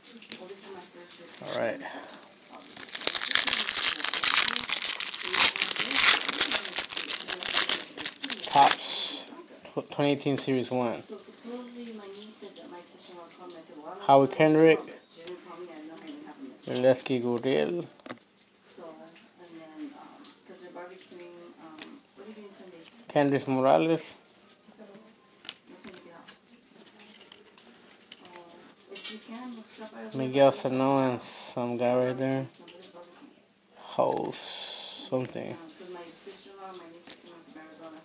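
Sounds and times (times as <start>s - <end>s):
wrapper crinkling: 0.0s - 9.2s, 25.2s - 29.1s.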